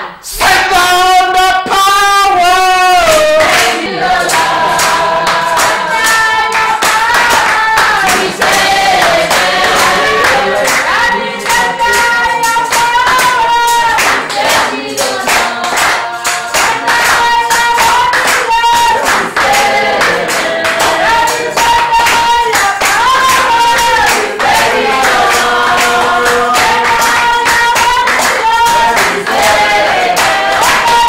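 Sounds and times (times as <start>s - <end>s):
congregation singing a hymn: 0.0s - 31.0s
hand clapping: 1.6s - 31.0s.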